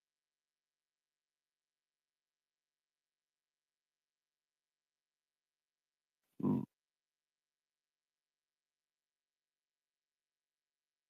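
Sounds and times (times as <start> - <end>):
person grunting: 6.4 - 6.7.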